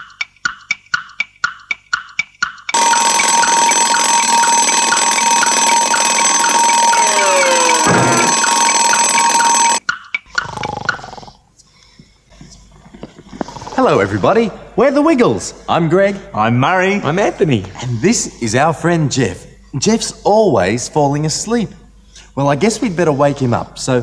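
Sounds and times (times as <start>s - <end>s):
alarm clock ticking: 0.0s - 10.5s
alarm clock bell ringing: 2.7s - 9.8s.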